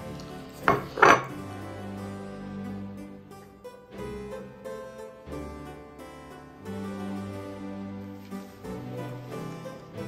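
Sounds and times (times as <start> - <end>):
soft background music: 0.0 - 10.0
ceramic plate clinking on wooden table: 0.6 - 1.3.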